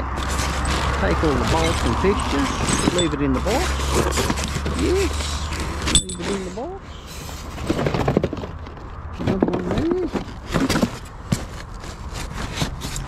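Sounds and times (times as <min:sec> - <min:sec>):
cardboard and plastic rustling: 0:00.0 - 0:13.0.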